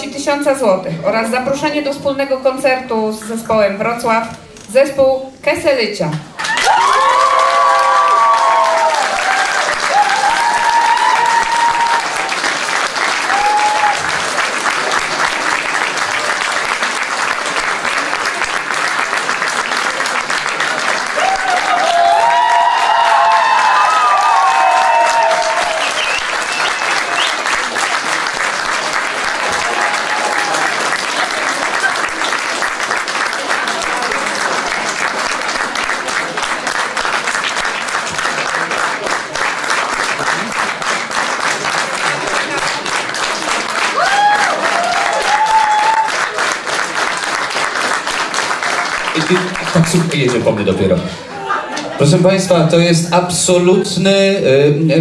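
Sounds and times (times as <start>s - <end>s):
audience applauding: 6.3s - 52.1s.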